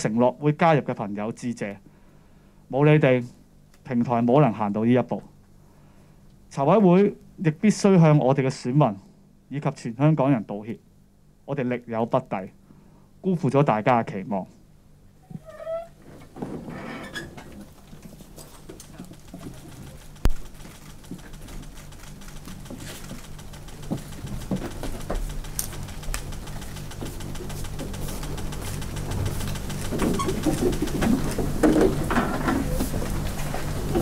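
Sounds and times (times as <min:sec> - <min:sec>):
steady low hum: 0:00.0 - 0:34.0
small clicks: 0:17.6 - 0:31.4.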